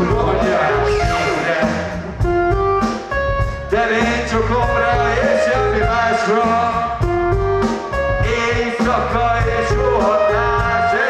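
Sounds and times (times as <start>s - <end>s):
person singing: 0.0s - 2.0s, 3.6s - 11.0s
deep bass beat: 0.0s - 11.0s
live hip-hop music over pa: 0.0s - 11.0s.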